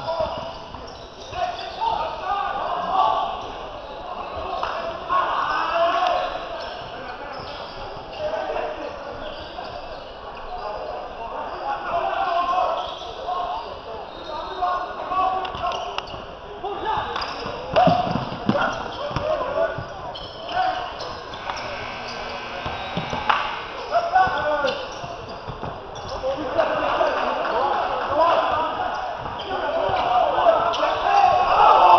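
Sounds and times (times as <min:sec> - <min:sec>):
indistinct voices: 0:17.0 - 0:31.9.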